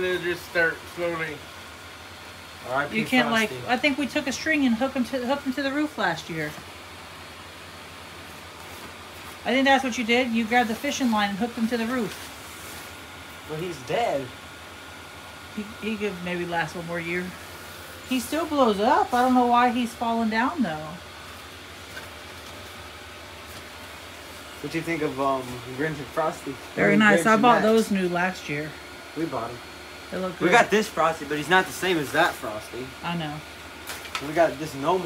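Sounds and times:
blower fan hissing: 0:00.0 - 0:35.0.

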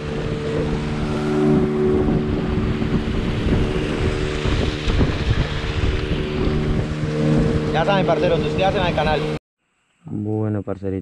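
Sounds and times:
outboard motor drone: 0:00.0 - 0:09.4
water rushing along hull: 0:00.0 - 0:09.4
wind on microphone: 0:00.0 - 0:09.4.

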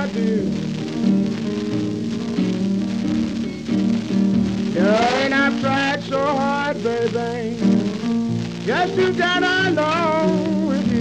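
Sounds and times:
man singing: 0:00.0 - 0:01.1, 0:04.7 - 0:11.0
blues guitar: 0:00.0 - 0:11.0
blues piano: 0:00.0 - 0:11.0
record surface crackle and hiss: 0:00.0 - 0:11.0.

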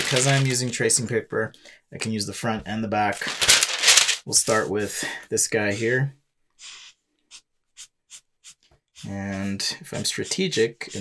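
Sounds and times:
marker rubbing on paper: 0:05.5 - 0:06.0, 0:06.6 - 0:11.0.

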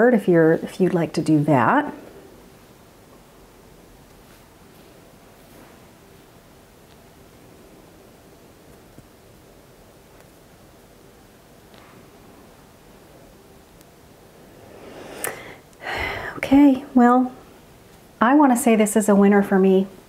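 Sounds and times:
quick breath in: 0:14.7 - 0:16.4.

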